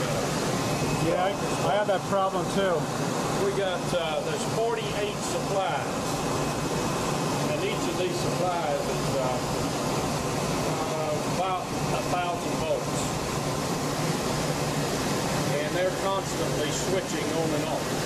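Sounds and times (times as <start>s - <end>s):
rush of cooling air: 0.0s - 18.0s.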